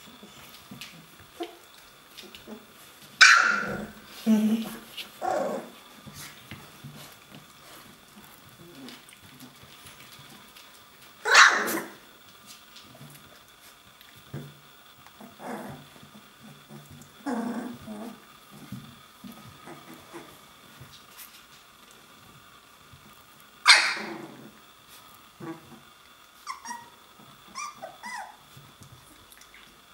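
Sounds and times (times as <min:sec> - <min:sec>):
puppies yipping: 0:03.2 - 0:03.8, 0:23.7 - 0:24.1, 0:26.4 - 0:28.4
puppy barking: 0:03.2 - 0:03.9, 0:11.2 - 0:12.0, 0:23.6 - 0:24.2
puppy yelping: 0:03.2 - 0:03.9, 0:11.2 - 0:12.0, 0:23.6 - 0:24.2, 0:26.4 - 0:28.4.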